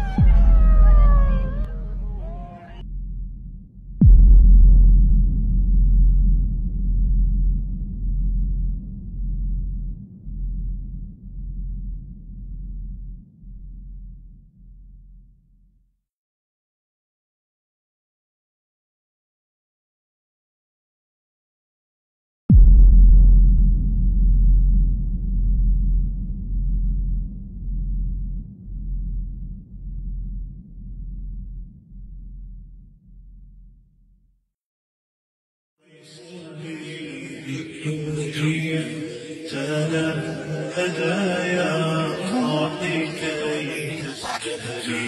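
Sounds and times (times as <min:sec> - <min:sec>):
deep boom sweeping into low rumble: 0:00.0 - 0:02.0, 0:02.9 - 0:14.6, 0:22.5 - 0:33.7
wavering falling high tone: 0:00.0 - 0:02.6
dark bass drone: 0:00.0 - 0:15.1, 0:22.5 - 0:33.5.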